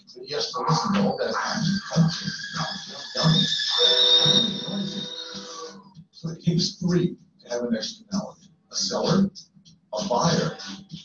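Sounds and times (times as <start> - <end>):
high-pitched whine: 0.0 - 7.0
background music: 0.9 - 6.1.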